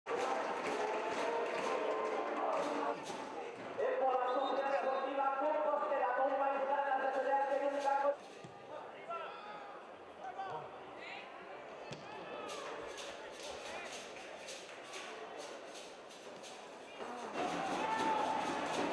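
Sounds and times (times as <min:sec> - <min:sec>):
stadium crowd noise: 0:00.1 - 0:18.9
short crowd calls: 0:16.9 - 0:18.9.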